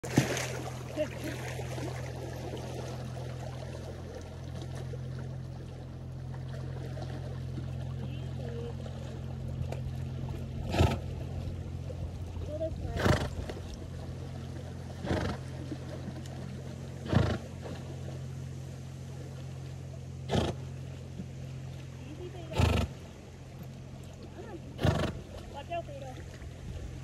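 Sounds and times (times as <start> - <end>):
low steady hum: 0.0 - 27.0
rushing water: 0.0 - 27.0
horse blowing through nostrils: 10.7 - 11.1, 15.0 - 15.4, 17.0 - 17.4, 20.3 - 20.6, 22.5 - 23.0, 24.8 - 25.3.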